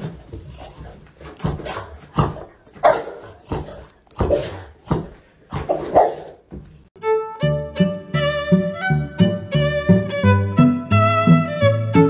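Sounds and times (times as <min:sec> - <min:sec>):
puppy barking: 0:02.8 - 0:03.5, 0:05.7 - 0:06.4.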